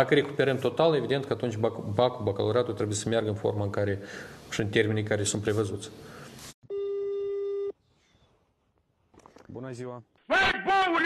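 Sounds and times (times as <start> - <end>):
telephone ringback tone: 6.7 - 7.7.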